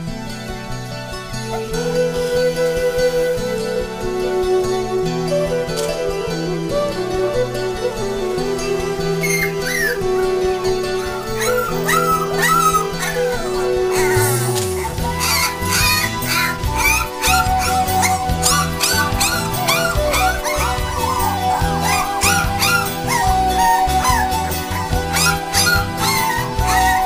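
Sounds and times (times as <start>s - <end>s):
background music: 0.0s - 27.0s
puppies whimpering and squealing: 1.4s - 27.0s.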